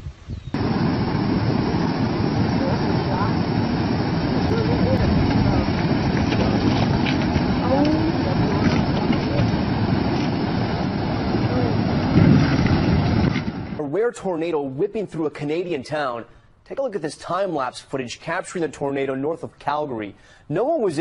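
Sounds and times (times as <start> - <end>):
rushing floodwater: 0.6 - 13.8
faint voices: 2.4 - 3.6, 4.3 - 12.2.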